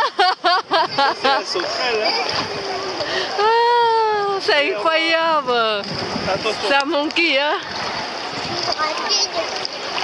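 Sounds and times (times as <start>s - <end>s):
seawater splashing and sloshing: 0.0s - 10.0s.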